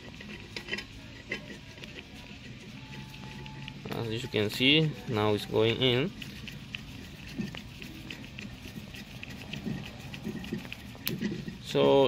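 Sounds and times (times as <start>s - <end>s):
metal ticking and scraping: 0.0s - 12.0s.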